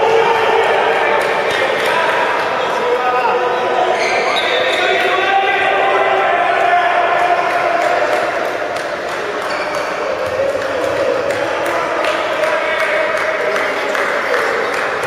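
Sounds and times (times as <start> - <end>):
ball bouncing on hall floor: 8.2 - 12.5.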